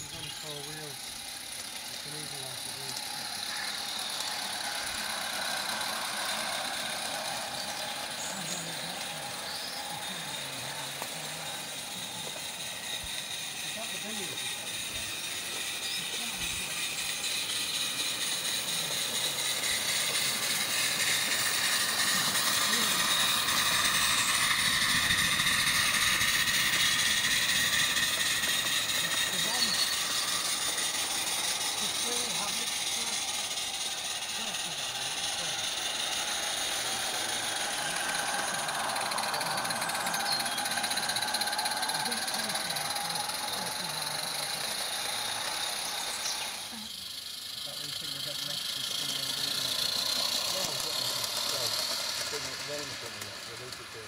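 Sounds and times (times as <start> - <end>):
steam hiss: 0.0 - 54.0
wheels rattling over rails: 0.0 - 54.0.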